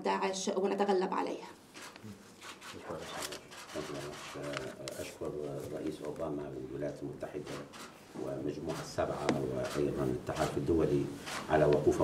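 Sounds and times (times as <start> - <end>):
man speaking in low voice: 2.8 - 12.0.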